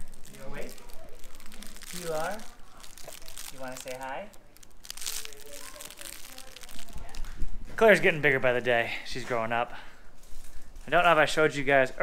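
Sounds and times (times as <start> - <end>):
crinkle toy rustling: 0.0 - 8.6, 10.1 - 11.4.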